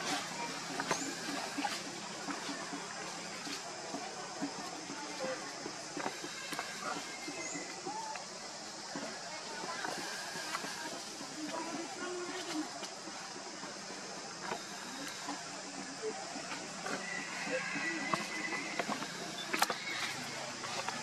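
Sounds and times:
faint indistinct voices: 0.0 - 21.0
steady hiss: 0.0 - 21.0.

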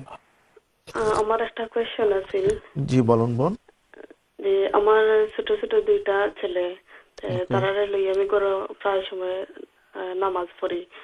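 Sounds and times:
person speaking over telephone: 7.2 - 8.2.

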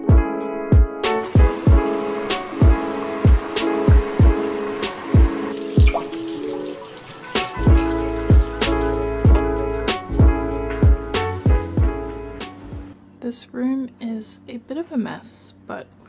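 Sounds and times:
background music with beat: 0.0 - 6.4, 7.2 - 12.9
kitchen tap running: 1.2 - 9.2.

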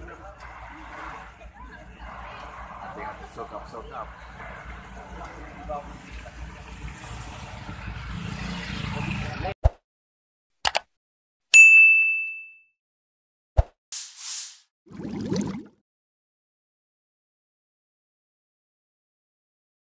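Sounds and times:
faint voices: 0.0 - 6.8
building fire outdoor noise: 0.0 - 9.6
sharp clicks: 10.6 - 10.9
bell-like notification ding: 11.6 - 12.7.

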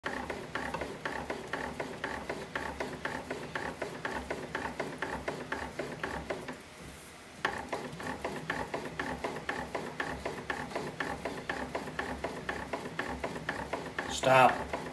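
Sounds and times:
bat-rolling machine clicking: 0.0 - 6.6, 7.4 - 14.9.

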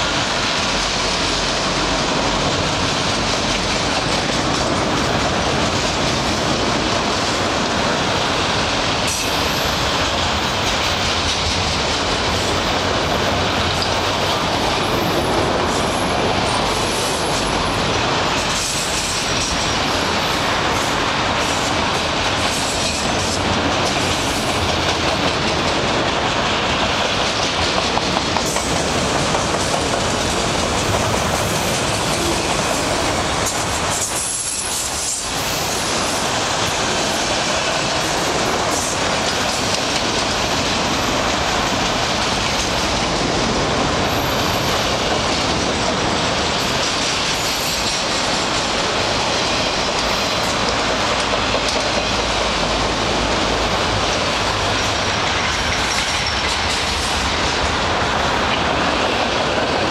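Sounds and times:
train wheels rumbling on rails: 0.0 - 59.9
wheels clacking over rail joints: 0.0 - 59.9.

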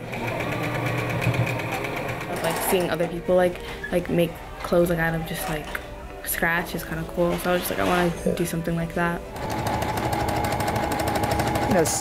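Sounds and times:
sewing machine running: 0.0 - 2.8, 9.4 - 12.0.

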